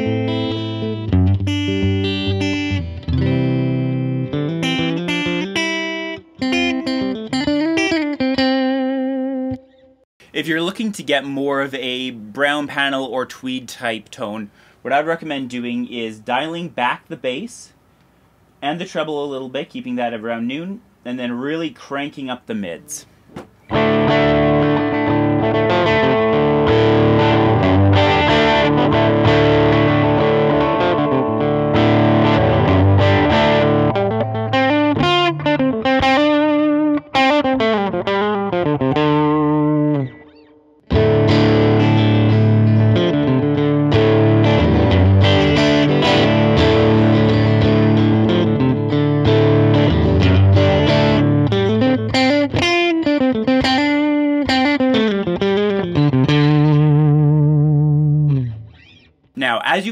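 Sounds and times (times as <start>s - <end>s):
electric guitar chords and bends: 0.0s - 10.3s, 23.4s - 59.4s.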